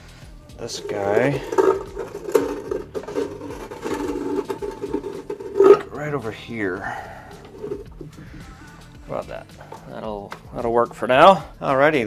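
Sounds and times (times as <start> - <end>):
battery box scraping and clicking: 0.8 - 5.8.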